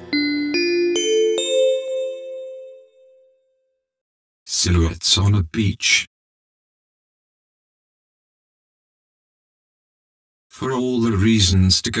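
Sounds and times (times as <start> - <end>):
rising bell-like chime notes: 0.0 - 3.3.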